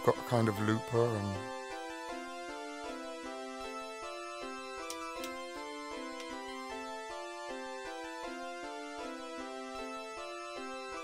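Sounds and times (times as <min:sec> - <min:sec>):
sharp clicks: 0:04.8 - 0:06.4.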